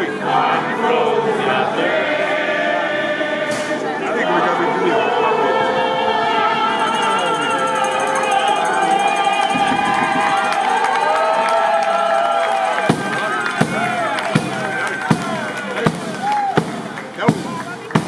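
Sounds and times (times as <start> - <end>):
crowd singing together: 0.0 - 10.7, 12.7 - 16.1
frame drum with jingles beating: 12.8 - 18.0.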